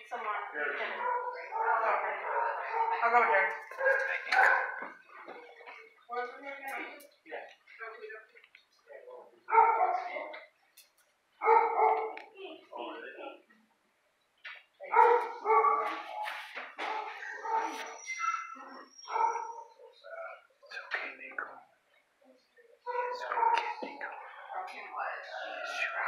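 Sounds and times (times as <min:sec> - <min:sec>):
dogs barking: 0:00.9 - 0:05.0, 0:09.4 - 0:10.3, 0:11.4 - 0:12.3, 0:14.9 - 0:20.0, 0:22.8 - 0:25.7.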